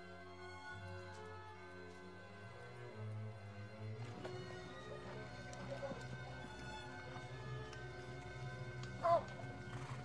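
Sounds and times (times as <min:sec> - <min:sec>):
dramatic music score: 0:01.5 - 0:10.0.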